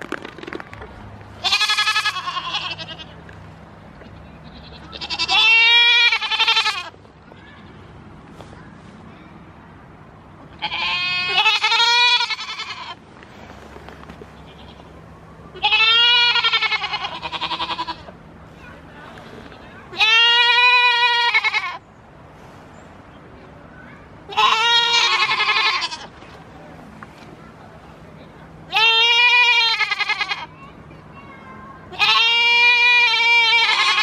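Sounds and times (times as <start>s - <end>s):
goats bleating: 1.4s - 3.2s, 4.1s - 7.8s, 10.6s - 13.0s, 15.6s - 18.1s, 19.9s - 21.8s, 24.3s - 26.1s, 28.7s - 30.6s, 31.9s - 34.0s.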